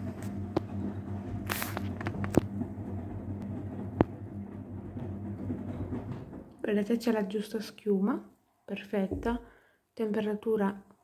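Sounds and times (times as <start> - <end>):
wet laundry turning in drum: 0.0 - 7.6
washing machine motor hum: 0.0 - 7.7
sharp clicks and knocks: 0.1 - 6.7.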